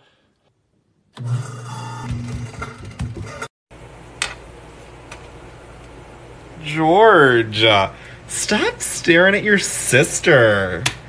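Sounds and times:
garbage disposal grinding: 0:01.2 - 0:03.5.

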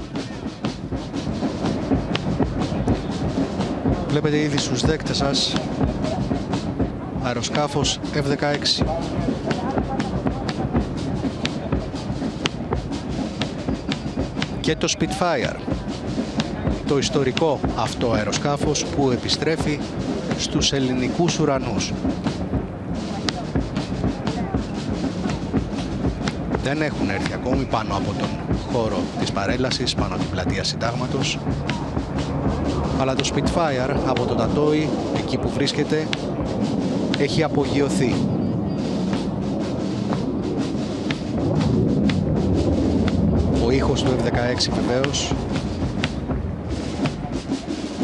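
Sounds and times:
indistinct voices: 0:01.7 - 0:48.0
jet flying overhead: 0:30.1 - 0:48.0.

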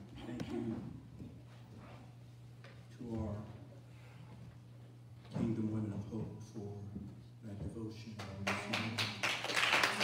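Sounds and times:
congregation clapping: 0:08.2 - 0:10.0.

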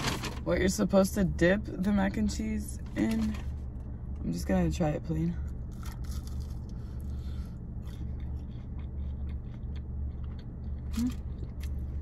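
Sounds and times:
steady low hum: 0:00.0 - 0:12.0
person biting fried food: 0:05.7 - 0:07.1, 0:07.8 - 0:11.8
chewing with mouth clicks: 0:07.8 - 0:12.0.

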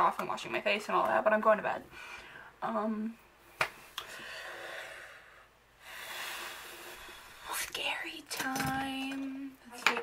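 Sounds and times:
person whispering: 0:07.4 - 0:09.6.

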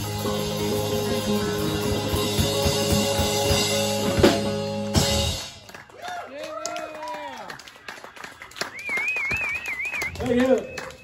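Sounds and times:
live band playing: 0:00.0 - 0:06.0
hand clapping: 0:05.6 - 0:11.0.

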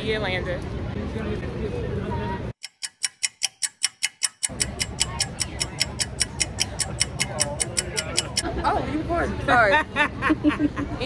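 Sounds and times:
outdoor background noise: 0:00.0 - 0:11.0
rapid clock ticking: 0:02.6 - 0:08.4.

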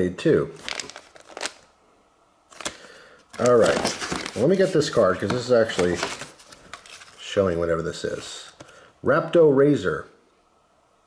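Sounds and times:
packaging crinkling: 0:00.6 - 0:01.7, 0:02.5 - 0:08.6.

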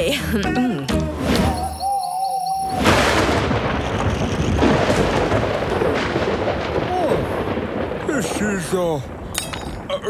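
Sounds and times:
thunder rumbling: 0:02.6 - 0:10.0.

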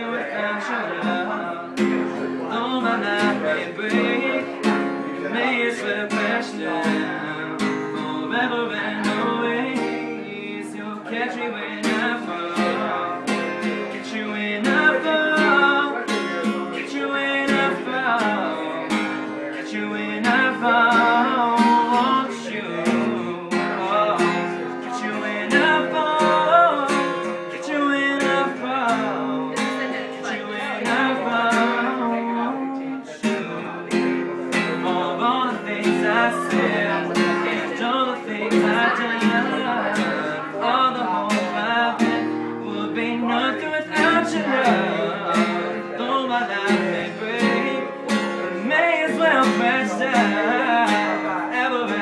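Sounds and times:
acoustic guitar strumming: 0:00.0 - 0:52.0
man singing: 0:00.0 - 0:52.0.

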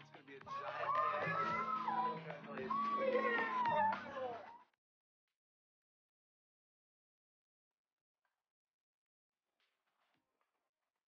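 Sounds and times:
background music: 0:00.0 - 0:04.6
excited squealing voices: 0:00.5 - 0:04.6.

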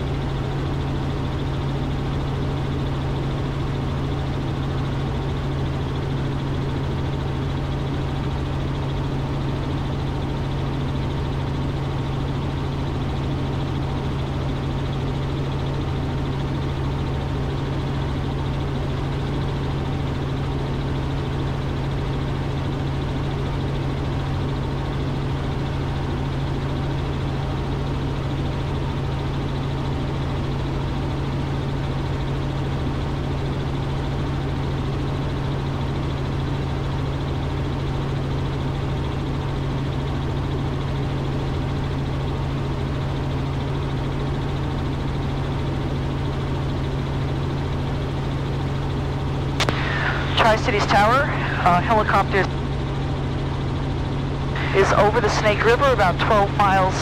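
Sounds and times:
constant low hum: 0:00.0 - 0:57.0
helicopter rotors and engine drone: 0:00.0 - 0:57.0
person speaking: 0:49.8 - 0:52.5, 0:54.6 - 0:57.0.

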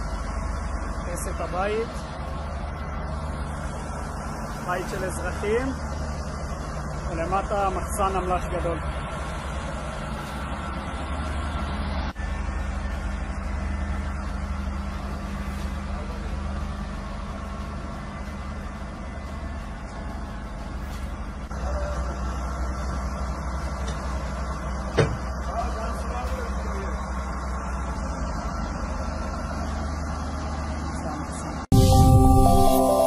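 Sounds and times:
engine humming: 0:00.0 - 0:33.0.

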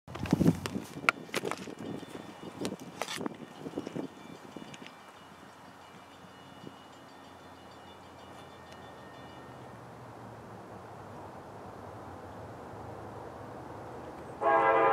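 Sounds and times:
faint outdoor background: 0:00.1 - 0:14.9.

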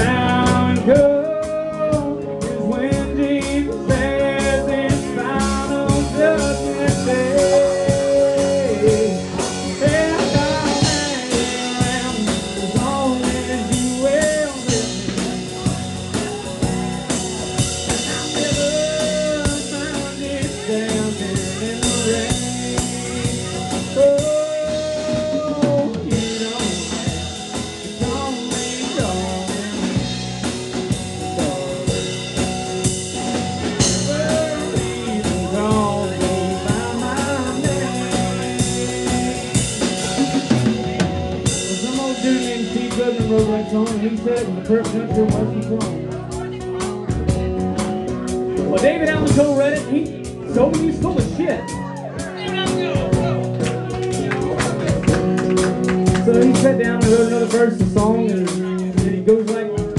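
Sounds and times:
person singing: 0:00.0 - 0:47.5, 0:54.1 - 0:59.9
drum beat: 0:00.0 - 0:59.9
guitar: 0:00.0 - 0:59.9.

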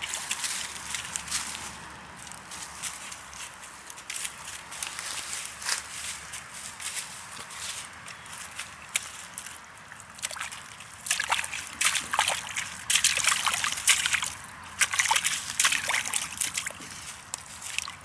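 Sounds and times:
puppy pawing through mud and leaves: 0:00.0 - 0:18.0.

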